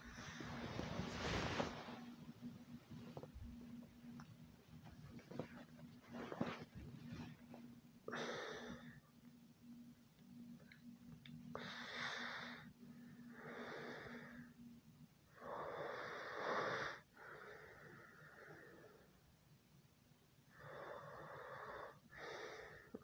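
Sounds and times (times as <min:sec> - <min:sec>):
slow breathing: 0:00.0 - 0:02.3, 0:11.5 - 0:14.6, 0:15.3 - 0:19.2, 0:20.5 - 0:23.0.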